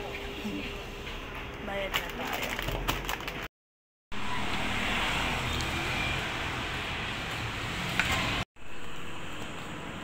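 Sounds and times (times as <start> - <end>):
road traffic hum: 4.1 - 10.0.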